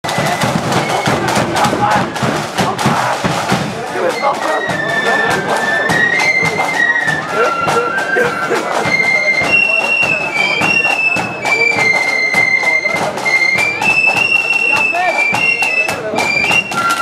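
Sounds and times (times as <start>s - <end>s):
crowd chatter: 0.0s - 17.0s
high flute melody: 0.0s - 17.0s
marching band drum beats: 0.0s - 17.0s.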